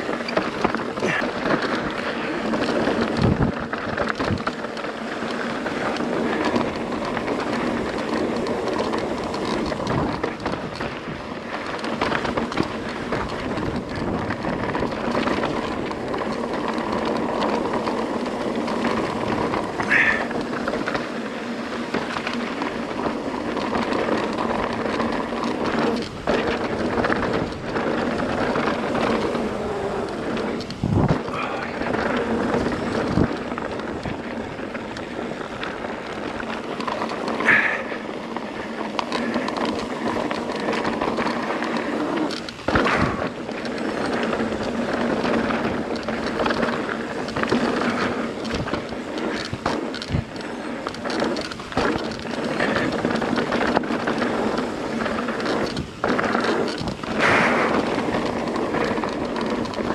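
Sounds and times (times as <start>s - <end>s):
bike rattling and knocking: 0.0s - 59.9s
bike tyres on loose gravel: 0.0s - 59.9s.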